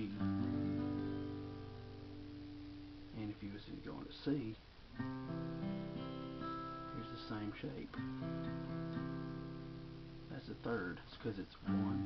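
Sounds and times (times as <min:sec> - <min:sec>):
acoustic guitar notes ringing: 0:00.0 - 0:03.4, 0:04.9 - 0:11.0, 0:11.6 - 0:12.0.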